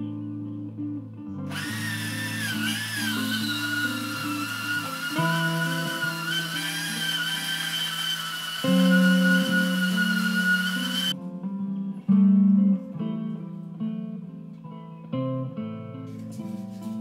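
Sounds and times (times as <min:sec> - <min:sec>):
guitar music: 0:00.0 - 0:17.0
power tool motor whine on steel: 0:01.5 - 0:11.2.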